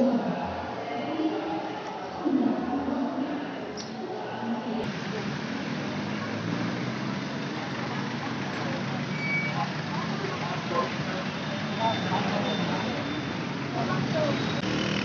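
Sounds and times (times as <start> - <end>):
indistinct voices: 0.0 - 15.0
street traffic: 3.8 - 15.0.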